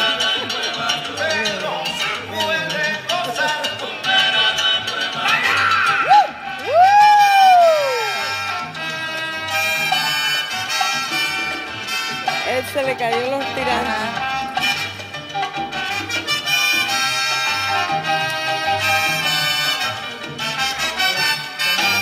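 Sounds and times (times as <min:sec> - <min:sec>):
salsa music: 0:00.0 - 0:22.0.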